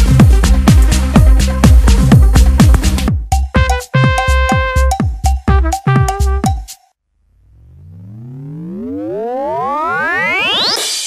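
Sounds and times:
rising synthesizer sweep: 7.2s - 11.0s.

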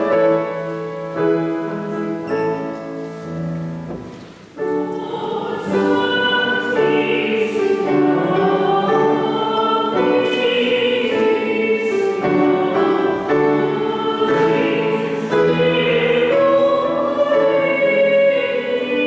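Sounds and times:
choir singing a hymn: 4.6s - 19.0s.

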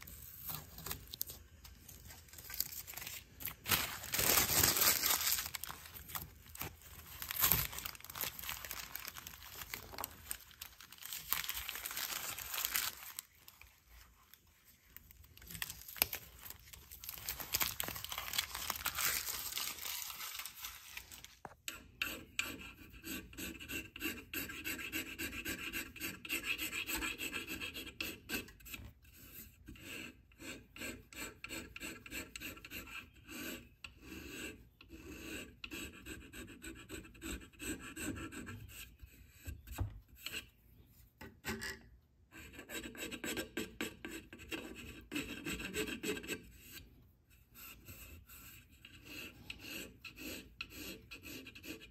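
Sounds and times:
masking tape peeling: 0.0s - 13.8s, 15.2s - 21.4s
rasp filing epoxy and wood: 21.7s - 40.5s, 42.4s - 51.9s.

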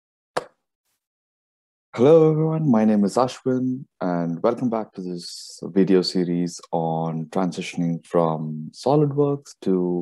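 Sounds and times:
voice: 2.0s - 10.0s.

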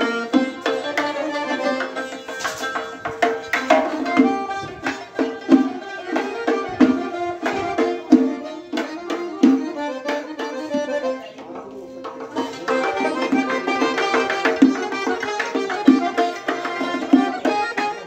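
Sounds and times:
accordion playing: 0.0s - 18.0s
plucked lute: 0.0s - 18.0s
frame drum beating: 1.6s - 10.9s.

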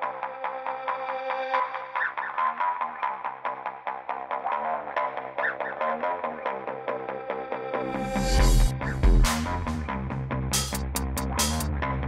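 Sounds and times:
background music with quick beat: 7.9s - 11.9s.

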